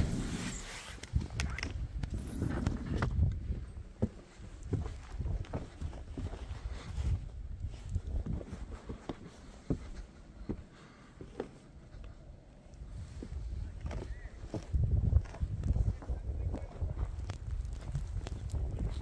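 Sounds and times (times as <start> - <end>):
wind rumble on microphone: 0.0 - 9.1, 12.8 - 19.0.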